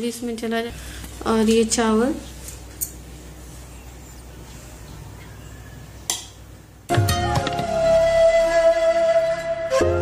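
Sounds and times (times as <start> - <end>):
flute music: 6.9 - 10.0.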